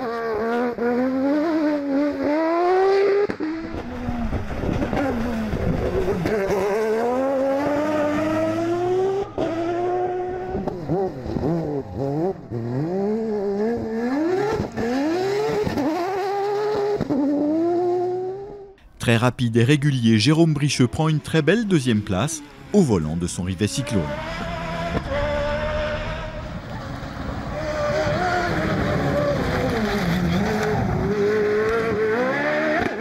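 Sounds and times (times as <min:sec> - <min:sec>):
rally car engines revving: 0:00.0 - 0:33.0.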